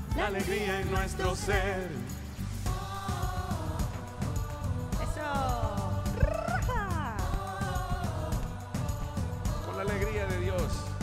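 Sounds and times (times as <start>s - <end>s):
backing music track: 0.0s - 11.0s
woman singing wordless vocal run: 2.7s - 9.9s.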